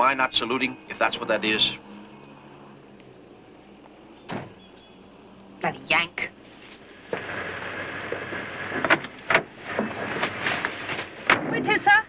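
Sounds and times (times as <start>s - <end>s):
car engine rumbling: 0.0s - 11.8s
car doors shutting: 4.2s - 4.7s.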